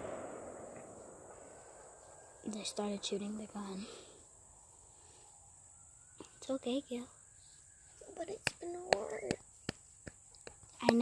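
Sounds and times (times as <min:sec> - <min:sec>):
distant gunshot echo: 0:00.0 - 0:04.1.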